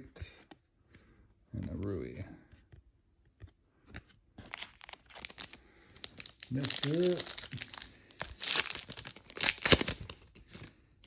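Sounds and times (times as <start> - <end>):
foil wrapper tearing and crinkling: 4.4 - 10.7.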